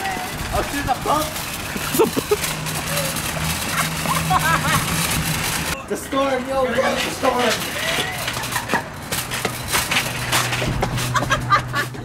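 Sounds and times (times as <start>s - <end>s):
shopping cart rattling over pavement: 0.0s - 12.0s.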